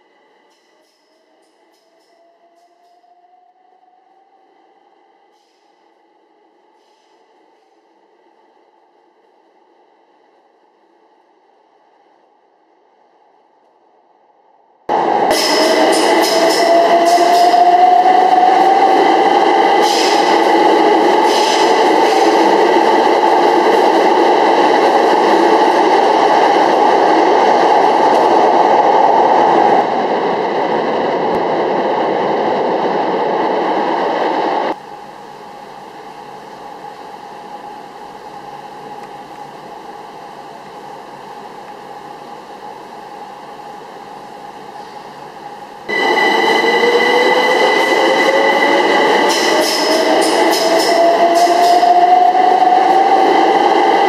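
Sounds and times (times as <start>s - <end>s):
train rushing hiss: 14.9s - 23.6s.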